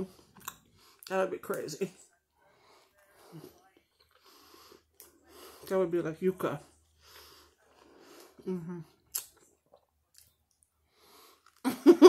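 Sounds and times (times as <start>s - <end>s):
chewing sandwich: 2.6s - 5.7s, 6.8s - 11.7s
breathing through the nose: 4.2s - 5.7s.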